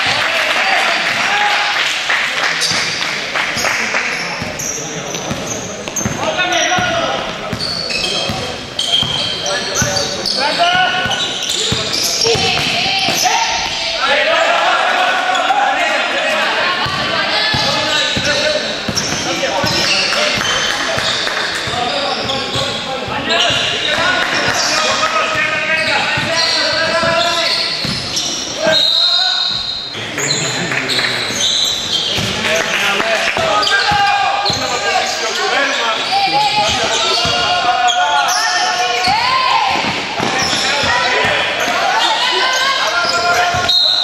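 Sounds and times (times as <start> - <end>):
basketball bouncing on hard court: 5.3 - 6.2, 6.8 - 7.7, 10.7 - 13.8, 16.8 - 22.8, 25.3 - 27.2, 27.8 - 28.2, 32.2 - 32.4
players and spectators shouting: 6.0 - 44.0.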